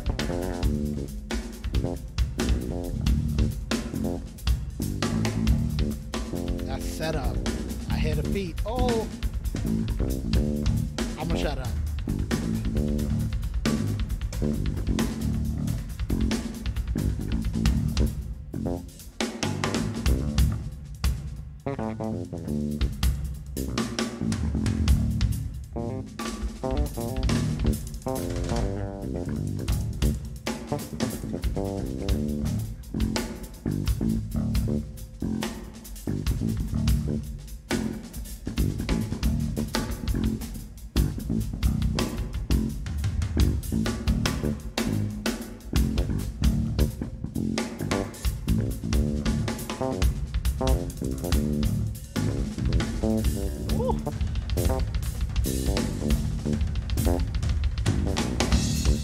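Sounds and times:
bass guitar: 0.0 - 20.7, 21.6 - 59.0
drum kit played fast: 0.0 - 59.0.

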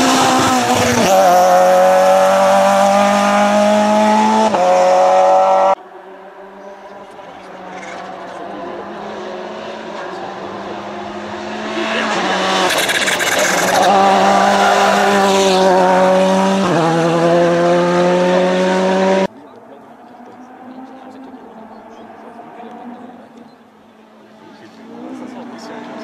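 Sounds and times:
rally car engine at full pace: 0.0 - 26.0.

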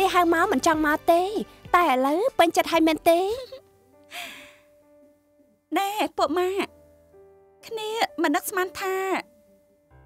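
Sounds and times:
woman speaking: 0.0 - 3.6, 5.7 - 6.7, 7.6 - 9.3
faint background music: 0.0 - 10.0
breathy sigh: 4.0 - 4.8.

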